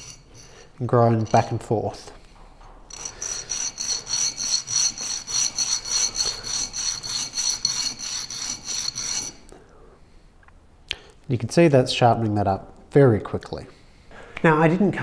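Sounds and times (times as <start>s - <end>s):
metal scraping on sharpening plate: 0.0s - 1.7s, 2.9s - 9.5s.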